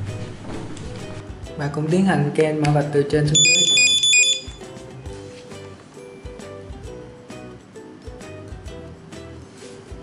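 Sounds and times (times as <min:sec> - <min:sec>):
background music: 0:00.0 - 0:10.0
barcode scanner beep: 0:03.4 - 0:04.6.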